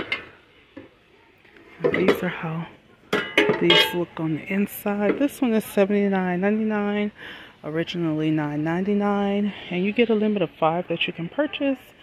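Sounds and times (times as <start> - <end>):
woman speaking: 1.8 - 2.8, 3.5 - 12.0.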